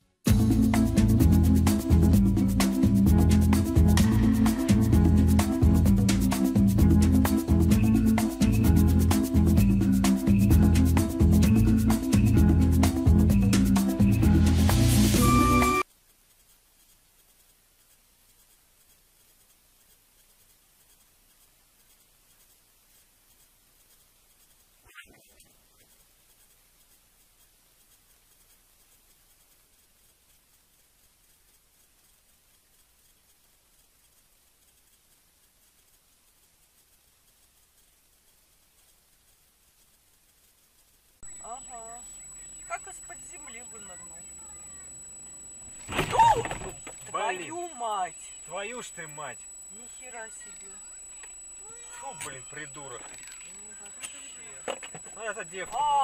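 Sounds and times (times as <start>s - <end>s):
faint hiss: 0.0s - 56.0s
steady high-pitched tone: 7.3s - 15.8s, 41.2s - 56.0s
quiet talking voices: 41.3s - 45.0s, 46.1s - 56.0s.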